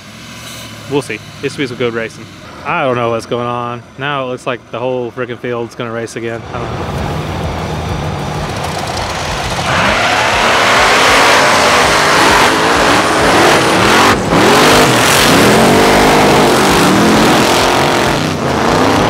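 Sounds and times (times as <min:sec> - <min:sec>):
buggy engines revving hard: 0:06.4 - 0:19.0.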